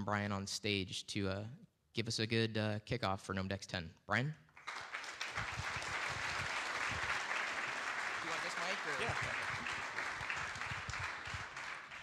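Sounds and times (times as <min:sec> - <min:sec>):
audience applauding: 0:04.6 - 0:12.0.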